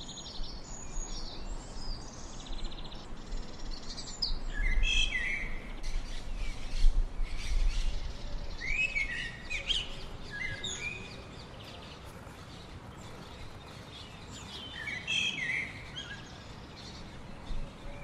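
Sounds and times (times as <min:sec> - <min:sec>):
birds twittering: 0:00.0 - 0:18.0.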